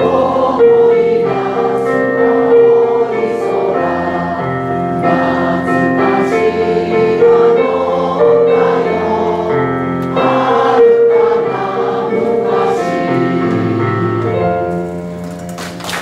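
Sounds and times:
group singing in chorus: 0.0s - 14.9s.

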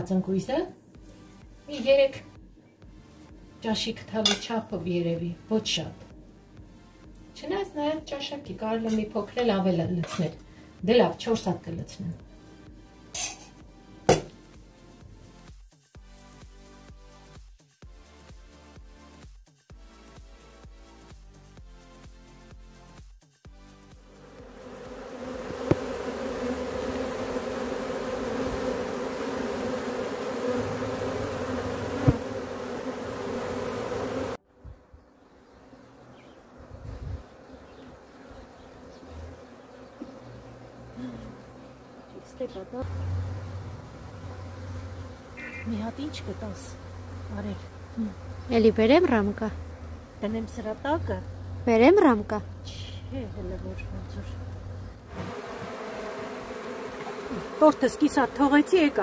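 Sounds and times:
honeybees buzzing: 0.0s - 17.4s, 19.8s - 59.0s.

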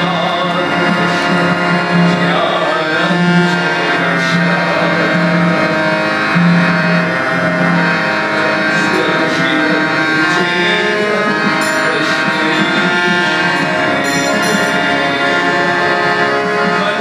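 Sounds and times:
harmonium chords: 0.0s - 17.0s
man singing: 0.0s - 17.0s.

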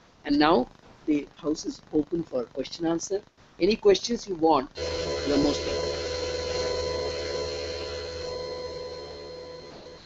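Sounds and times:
electronic hum and hiss: 0.0s - 10.0s
held electronic tones: 4.8s - 10.0s.

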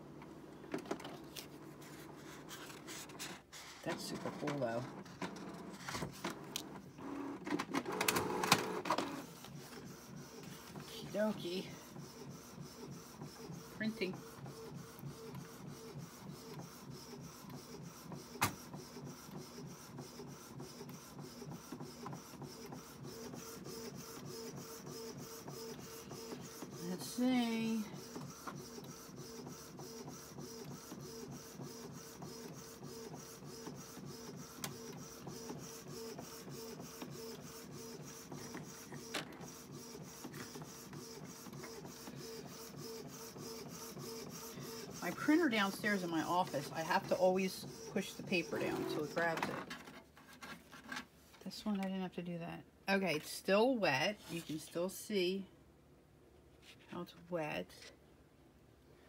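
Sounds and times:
printer printing: 0.0s - 51.0s.

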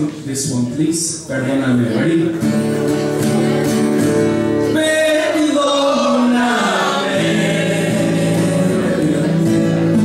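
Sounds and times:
acoustic guitars: 0.0s - 10.0s.

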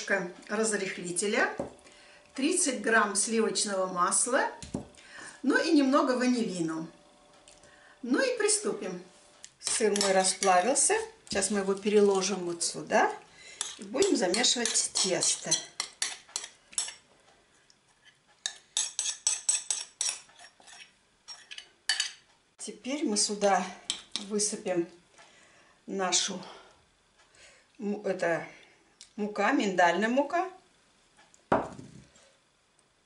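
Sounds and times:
knock on glass bowl: 31.5s - 31.9s.

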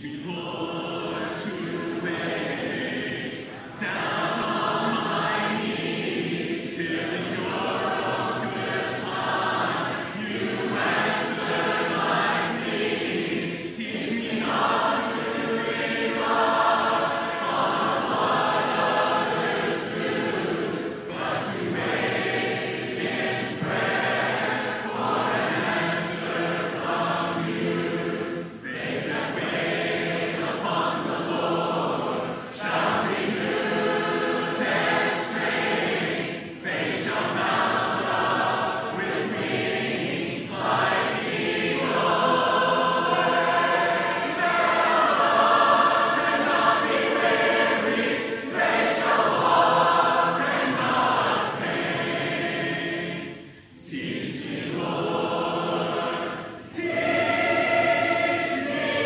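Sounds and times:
choir singing a hymn: 0.0s - 59.0s.

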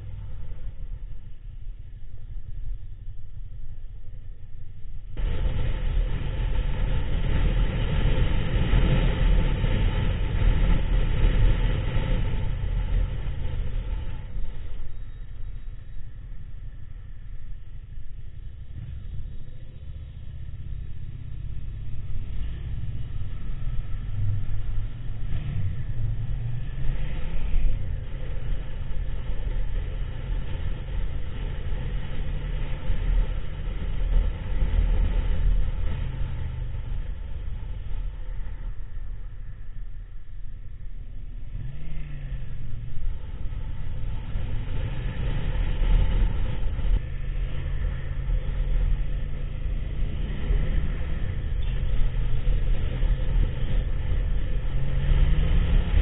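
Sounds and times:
motorcycle engine and road rumble: 0.0s - 56.0s.

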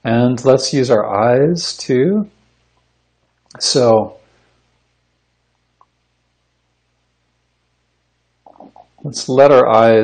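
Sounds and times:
microphone hum and hiss: 0.0s - 10.0s.

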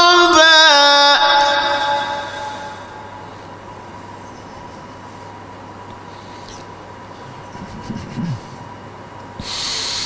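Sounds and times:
sound system hiss and hum: 0.0s - 10.0s
faint low vocal murmur: 6.5s - 8.8s.

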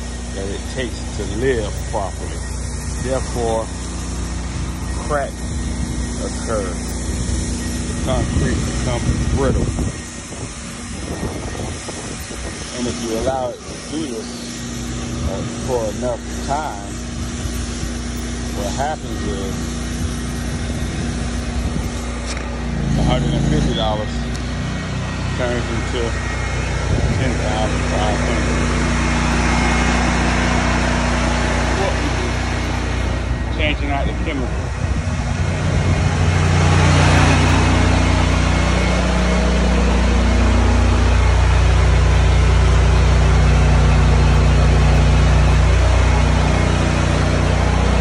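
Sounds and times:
pressure washer engine hum: 0.0s - 48.0s
water spraying onto concrete: 0.0s - 48.0s.

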